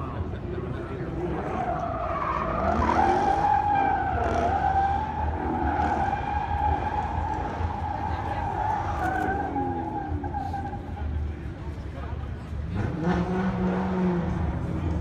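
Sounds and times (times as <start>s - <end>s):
tires squealing: 0.0s - 11.8s
car engine revving: 0.5s - 11.3s, 12.6s - 15.0s.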